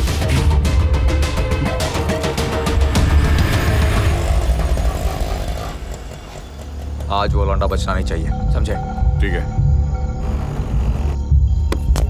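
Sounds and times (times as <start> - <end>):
auto-rickshaw engine rumbling: 3.6 - 9.0.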